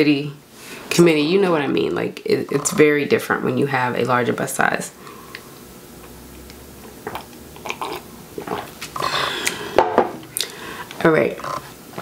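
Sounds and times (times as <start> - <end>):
person sipping and swallowing: 7.0 - 10.6.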